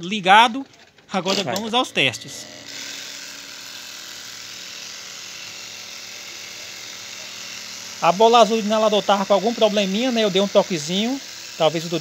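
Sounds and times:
air compressors whirring: 0.6s - 12.0s.

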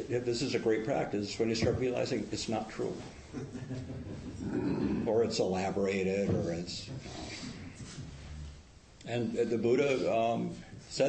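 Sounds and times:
soft low laughter: 3.3s - 5.0s.

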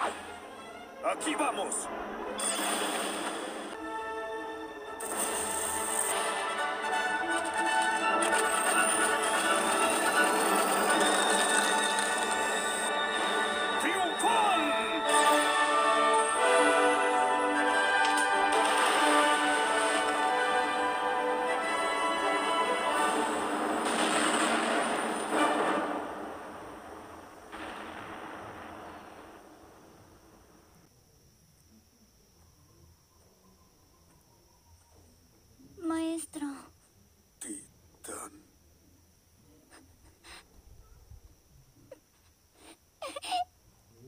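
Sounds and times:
soundtrack music: 3.5s - 26.3s
rushing explosion blasts: 23.4s - 30.1s
person gasping and whimpering: 42.6s - 43.5s.

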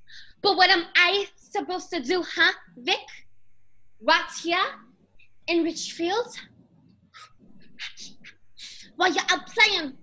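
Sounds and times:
woman speaking: 0.0s - 3.3s, 4.0s - 4.9s, 5.5s - 6.5s, 7.2s - 10.0s.

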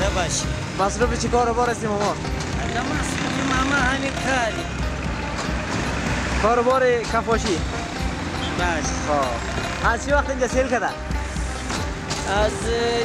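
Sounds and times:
music: 0.0s - 13.0s
road traffic noise: 0.0s - 13.0s.

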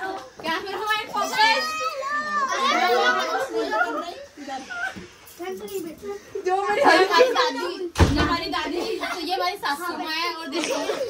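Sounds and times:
voices talking excitedly: 0.0s - 11.0s.

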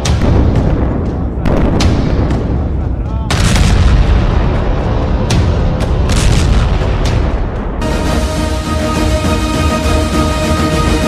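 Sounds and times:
heavy booms: 0.0s - 9.0s
deep rumble: 0.0s - 11.0s
music: 0.0s - 11.0s.

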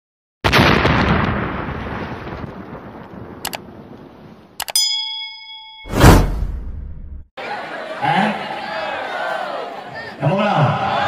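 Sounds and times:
loud boom: 0.5s - 2.8s
explosion rumble: 0.5s - 3.9s
clicks: 4.6s - 4.8s
bell-like ding: 4.6s - 6.4s.

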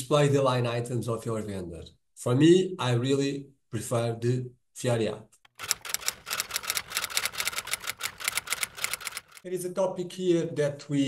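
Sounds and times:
typewriter key clicks: 5.5s - 9.4s.

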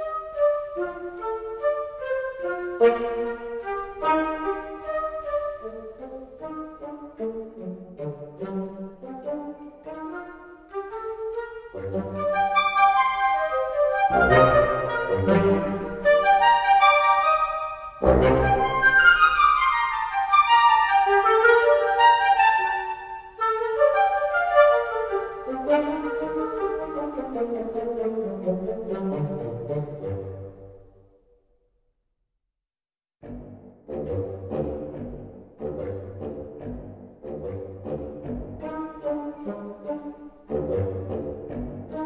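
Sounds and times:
woodwind ensemble short notes: 0.0s - 30.8s.

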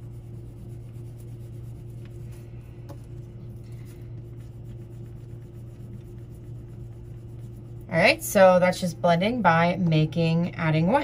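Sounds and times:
pastel rubbing on paper: 0.0s - 8.5s
steady low hum: 0.0s - 11.0s.

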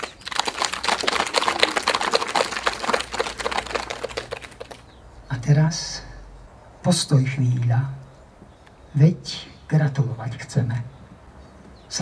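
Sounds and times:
small audience applauding: 0.0s - 4.9s.

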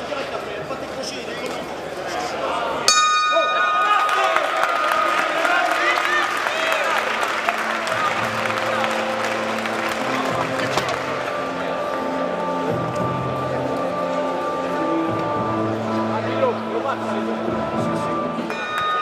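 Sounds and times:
crowd chatter: 0.0s - 19.0s
boxing ring bell: 2.9s - 4.4s, 18.5s - 19.0s
music: 4.4s - 19.0s.

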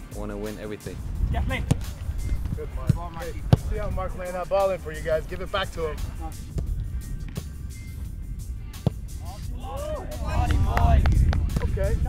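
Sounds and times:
background music: 0.0s - 12.0s
steady low rumble: 0.9s - 12.0s
soccer ball kicks: 1.3s - 4.0s, 6.0s - 7.5s, 8.7s - 9.2s, 10.4s - 11.8s.

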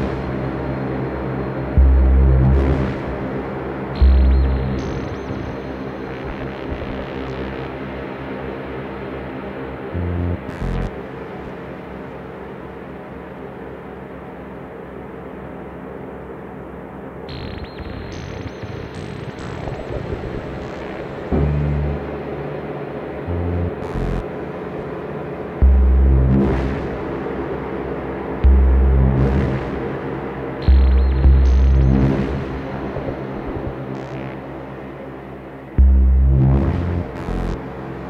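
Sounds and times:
deep bass notes: 0.0s - 7.8s, 10.0s - 11.0s, 19.7s - 34.8s, 35.7s - 38.0s
reverberant synth drone: 0.0s - 38.0s.

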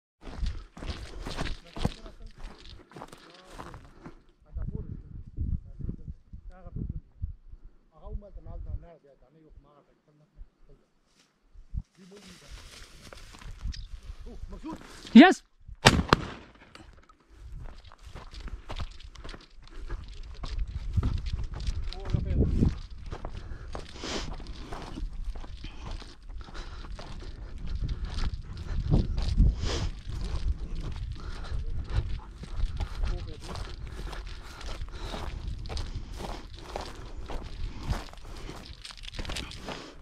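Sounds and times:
footsteps on stony ground: 0.2s - 4.3s, 12.2s - 13.8s, 15.8s - 40.0s
faint voice: 15.2s - 15.4s
shotgun firing: 15.8s - 16.8s
shell ejection crack: 15.8s - 17.1s.

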